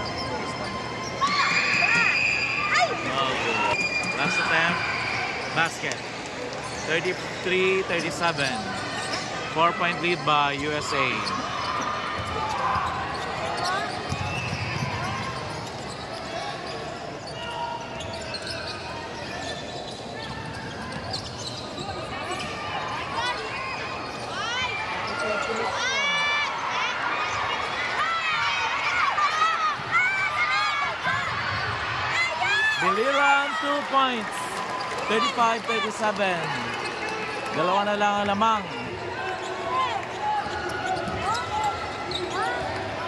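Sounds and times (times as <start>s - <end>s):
sneaker squeaks: 0.0s - 26.3s, 38.4s - 43.0s
murmur of crowd chatter: 0.0s - 43.0s.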